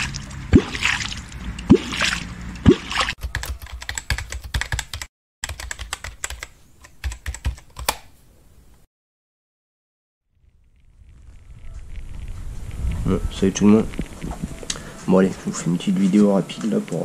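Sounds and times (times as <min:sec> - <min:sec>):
deep plops in water: 0:00.0 - 0:03.2
typewriter key clicks: 0:03.2 - 0:08.0.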